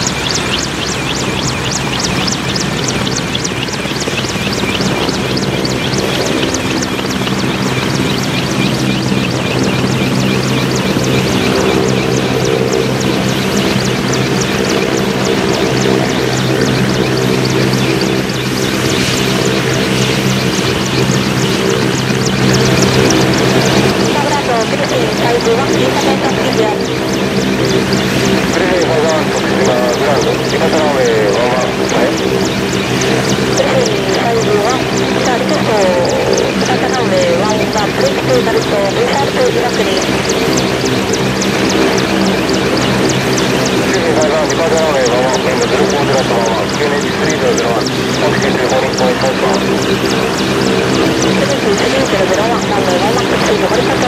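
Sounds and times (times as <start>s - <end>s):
helicopter turbine and rotor drone: 0.0s - 54.0s.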